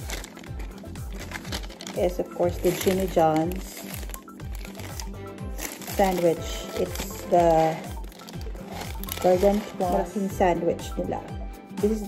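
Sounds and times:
paper wrapper crinkling: 0:00.0 - 0:10.2
background music: 0:00.0 - 0:12.0.

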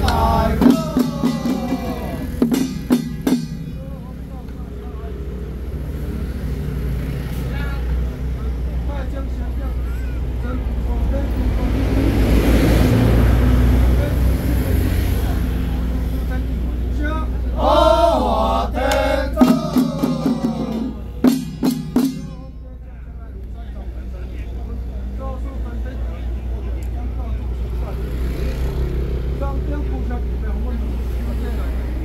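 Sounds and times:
men chanting: 0:00.0 - 0:03.5, 0:17.5 - 0:22.6.

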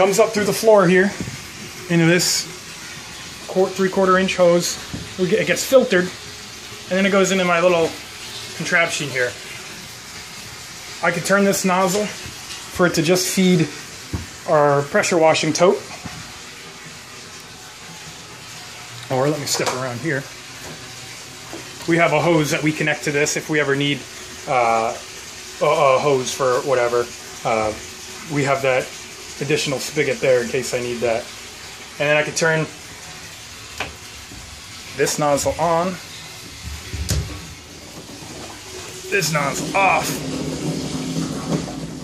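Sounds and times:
water running into a tank: 0:00.0 - 0:42.0.

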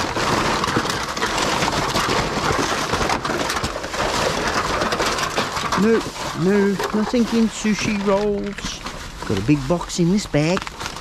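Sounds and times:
plastic bags rustling: 0:00.0 - 0:11.0.

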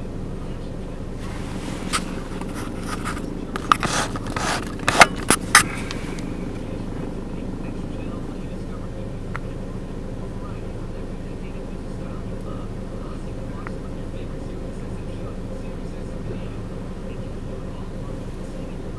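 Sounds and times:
steady low hum: 0:00.0 - 0:18.9.

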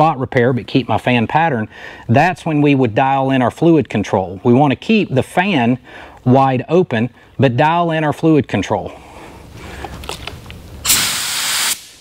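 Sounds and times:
spray gun compressed-air hiss: 0:10.8 - 0:12.0.

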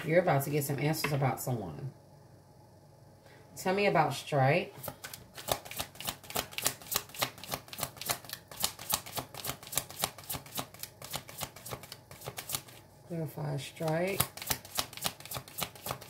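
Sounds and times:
cards being shuffled: 0:04.8 - 0:12.8, 0:13.8 - 0:16.0.

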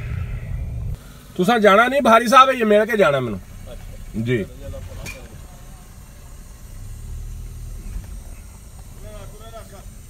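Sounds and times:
car engine running low: 0:00.0 - 0:10.0.

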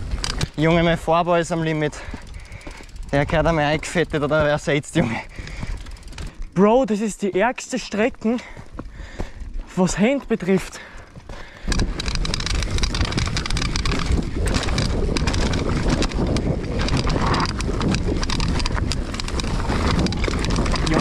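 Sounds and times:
bike chain and frame clatter: 0:00.0 - 0:21.0
bike tyres on dirt: 0:00.0 - 0:21.0
wind on microphone: 0:11.6 - 0:21.0.

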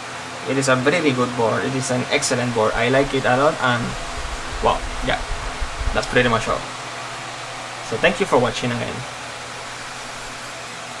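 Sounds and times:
fan rushing noise: 0:00.4 - 0:11.0
faint low hum: 0:02.0 - 0:10.6.

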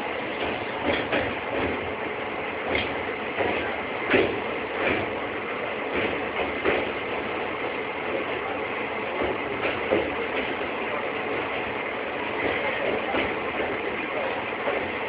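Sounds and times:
train wheels rumbling and rattling: 0:00.0 - 0:15.0.

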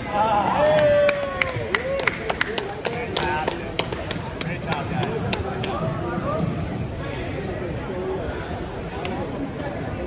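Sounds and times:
background voices and chatter: 0:00.0 - 0:10.0
people clapping: 0:00.5 - 0:05.8.

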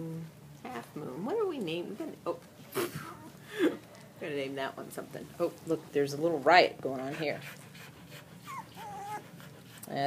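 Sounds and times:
puppy whimpering: 0:08.4 - 0:09.4.

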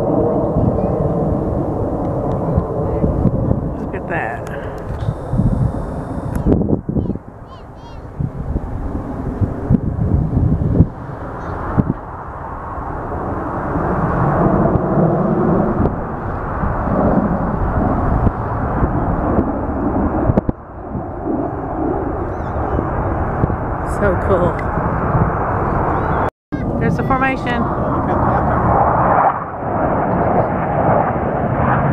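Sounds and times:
jet engines roaring: 0:00.0 - 0:31.9.

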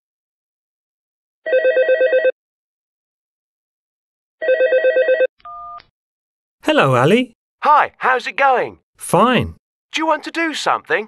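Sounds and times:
telephone ringing: 0:01.5 - 0:02.4, 0:04.4 - 0:05.8.

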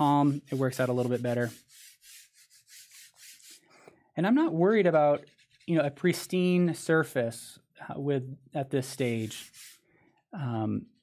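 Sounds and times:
pencil rubbing on paper: 0:00.0 - 0:03.8, 0:05.2 - 0:06.0, 0:08.9 - 0:09.8.

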